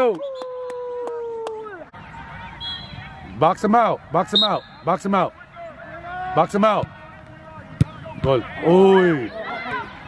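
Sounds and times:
outdoor sideline background: 0.0s - 10.0s.

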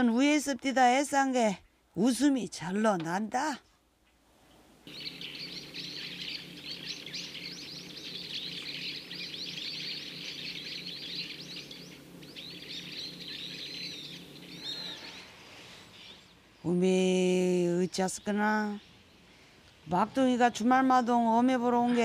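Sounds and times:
small birds chirping: 0.0s - 22.0s
steady low hum: 3.8s - 22.0s.

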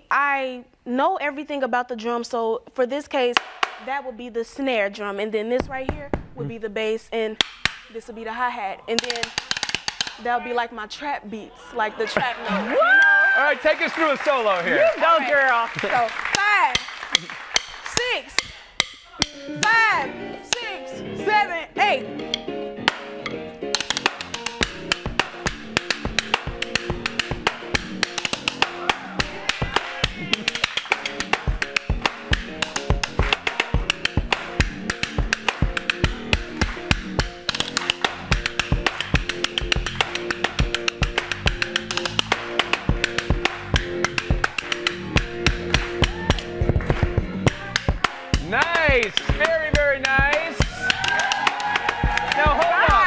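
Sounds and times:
drumsticks striking practice pad: 3.4s - 4.0s, 7.4s - 7.9s, 8.9s - 10.3s, 16.4s - 20.8s, 22.2s - 46.5s
drumsticks striking metal crutch: 7.4s - 7.9s, 8.9s - 10.3s, 16.4s - 20.8s, 22.2s - 46.5s
steady pitched tune: 16.8s - 51.2s.

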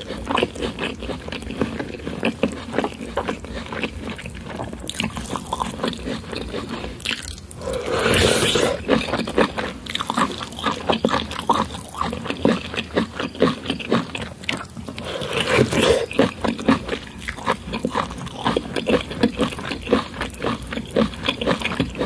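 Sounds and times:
chewing corn: 0.0s - 22.0s.

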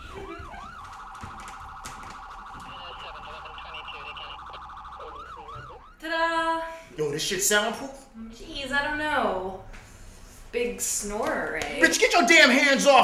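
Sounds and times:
electronic siren: 0.0s - 6.1s.

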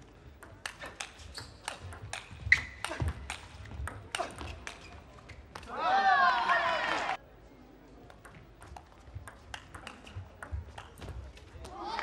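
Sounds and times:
loud shout: 5.7s - 7.2s
table tennis ball clicking: 8.2s - 11.0s.

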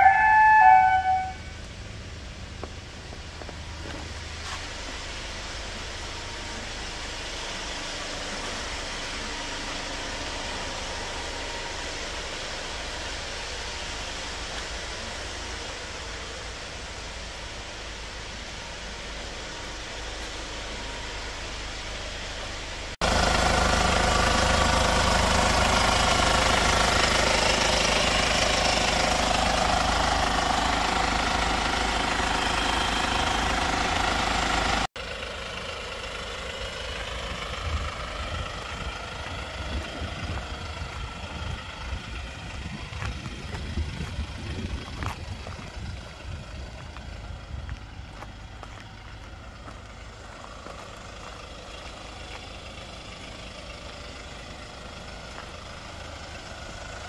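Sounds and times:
engine idling: 0.0s - 57.0s.

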